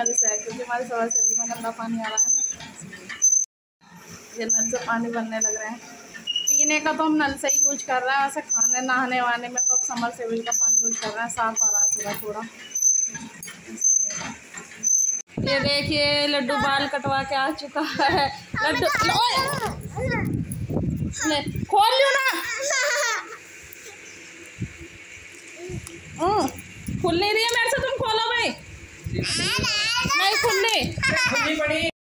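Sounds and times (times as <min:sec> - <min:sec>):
child speaking: 0:18.5 - 0:20.3, 0:29.2 - 0:31.5.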